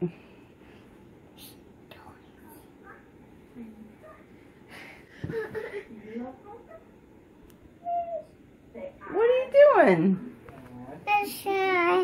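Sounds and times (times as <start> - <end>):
faint whispering: 1.4 - 2.8.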